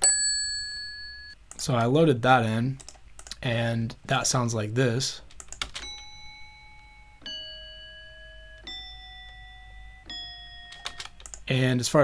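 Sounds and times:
alarm clock bell tones: 0:00.0 - 0:01.4, 0:05.8 - 0:11.2.

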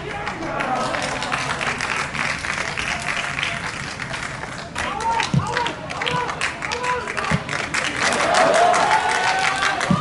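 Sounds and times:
spectators clapping: 0:00.0 - 0:10.0.

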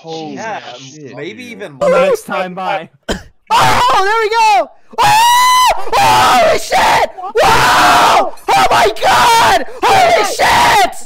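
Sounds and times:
man yelling in shock: 0:01.8 - 0:02.4, 0:03.5 - 0:10.9.

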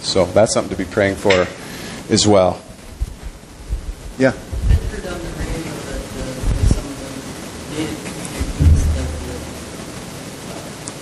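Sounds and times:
steady background hiss: 0:00.0 - 0:11.0
low thud: 0:08.4 - 0:09.5
low rumble: 0:08.5 - 0:09.8.

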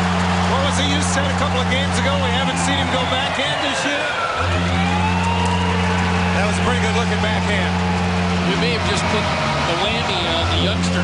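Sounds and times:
crowd cheering and applauding: 0:00.0 - 0:11.0
arena goal horn blast: 0:04.3 - 0:05.2.

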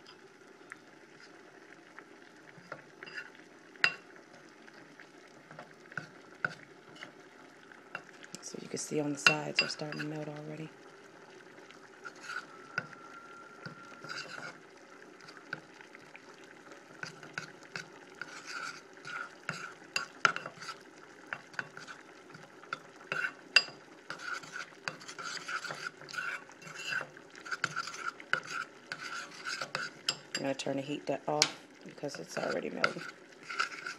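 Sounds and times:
metal spoon scraping bowl: 0:03.0 - 0:03.3, 0:09.2 - 0:10.3, 0:12.0 - 0:12.9, 0:13.6 - 0:14.6, 0:18.2 - 0:20.8, 0:23.1 - 0:30.5, 0:32.3 - 0:33.9.

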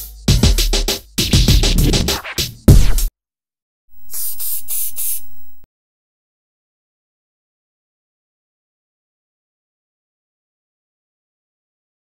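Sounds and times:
spray-paint can hissing: 0:04.1 - 0:05.5.

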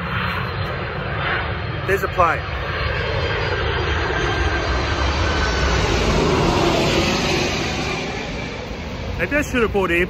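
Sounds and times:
jet airliner flying overhead: 0:00.0 - 0:10.0.

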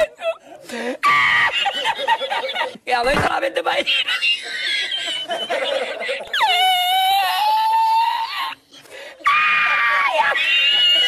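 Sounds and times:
high-pitched vocal screams: 0:06.3 - 0:08.6, 0:09.2 - 0:11.0.

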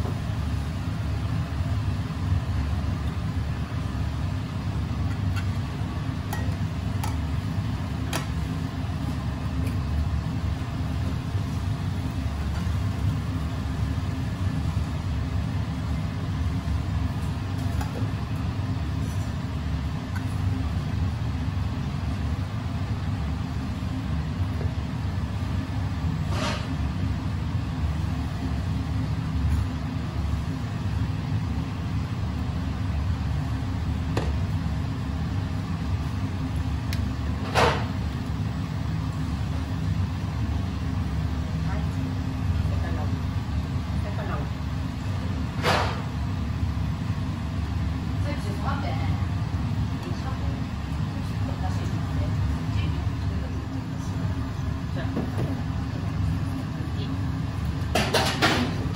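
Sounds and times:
kitchen background rumble: 0:00.0 - 0:58.9
clinks of metal bowls and utensils: 0:06.3 - 0:07.2.

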